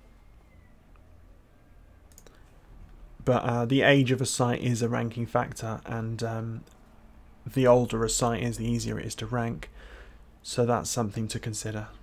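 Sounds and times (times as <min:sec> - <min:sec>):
room hum: 0:00.0 - 0:12.0
faint mouse clicks: 0:02.1 - 0:02.5.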